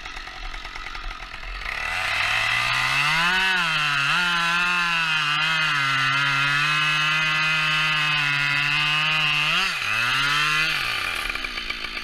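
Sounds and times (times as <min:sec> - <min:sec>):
chainsaw cutting through log: 0:00.0 - 0:12.0.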